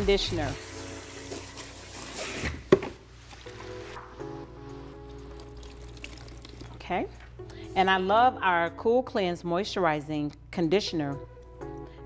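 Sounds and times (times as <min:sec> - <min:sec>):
soft background music: 0:00.0 - 0:12.0
faint water trickle: 0:05.0 - 0:07.2.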